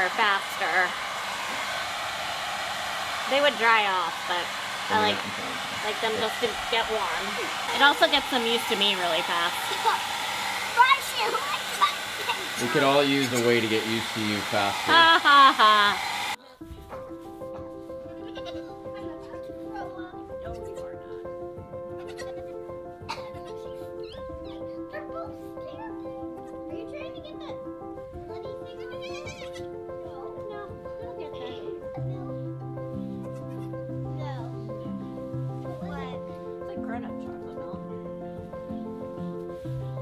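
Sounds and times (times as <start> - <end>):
soft music of long held notes: 16.4 - 40.0
goat kid bleating: 22.0 - 22.5, 29.1 - 29.8.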